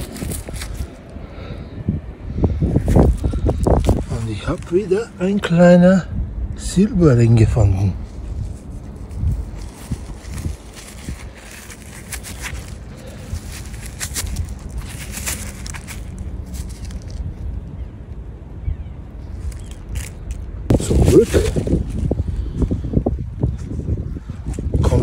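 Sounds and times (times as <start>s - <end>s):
soil and dry leaves rustling: 0.0s - 5.8s, 6.6s - 25.0s
low rumble on microphone: 6.0s - 25.0s.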